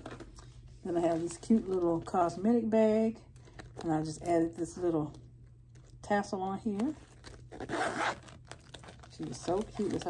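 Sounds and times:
zipper pulled on vinyl bag: 7.4s - 8.9s.

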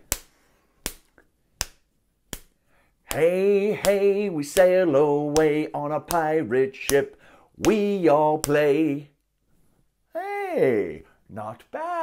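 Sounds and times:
fist smacking palm: 0.0s - 4.0s.

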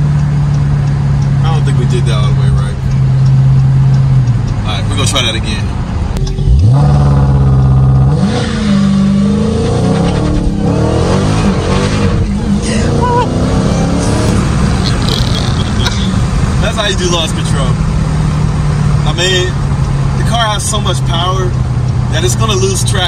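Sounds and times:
car engine revving and accelerating: 0.0s - 23.0s.

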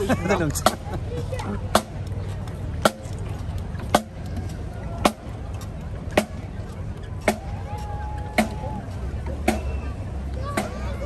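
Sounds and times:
snare and bass drums marching: 0.0s - 11.0s.

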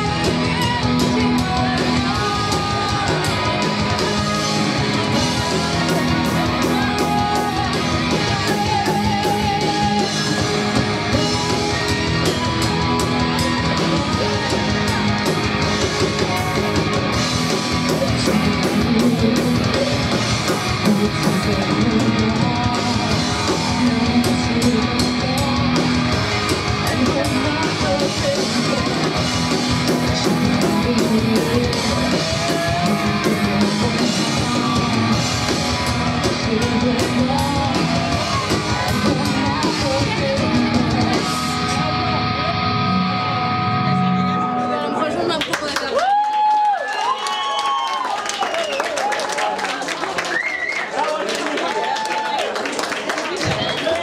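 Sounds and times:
woman singing: 0.0s - 4.3s, 5.3s - 11.3s, 13.6s - 15.0s, 17.9s - 29.3s, 29.9s - 35.3s, 36.2s - 41.8s
metal band playing live: 0.0s - 45.4s.

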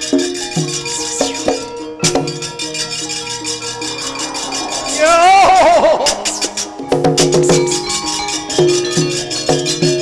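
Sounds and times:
ringing metallophone notes: 0.0s - 10.0s.

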